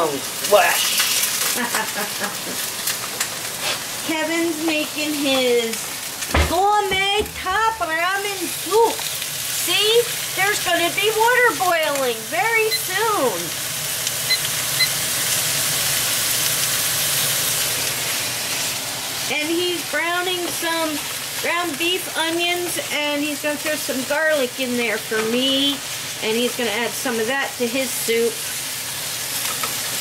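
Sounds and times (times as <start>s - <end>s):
meat sizzling in a frying pan: 0.0s - 30.0s.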